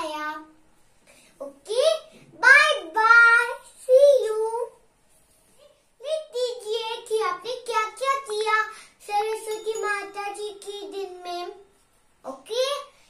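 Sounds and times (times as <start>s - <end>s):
girl singing: 0.0s - 0.6s, 1.4s - 4.8s, 6.0s - 12.9s.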